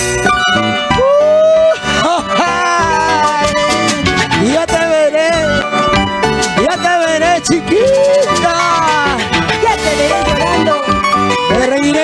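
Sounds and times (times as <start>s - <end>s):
live salsa band: 0.0s - 12.0s.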